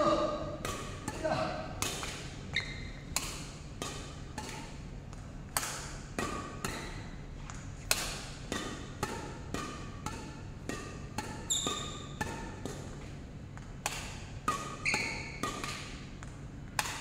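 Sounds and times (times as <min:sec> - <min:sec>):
badminton rackets hitting shuttlecock: 0:00.0 - 0:17.0.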